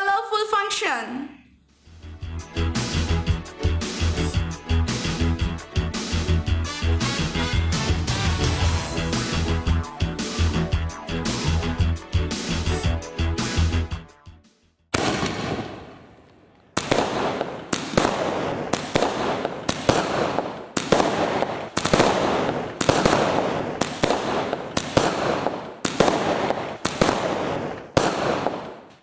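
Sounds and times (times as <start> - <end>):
fireworks shots bursting: 14.9 - 29.0
fireworks ignition rush: 16.8 - 28.8.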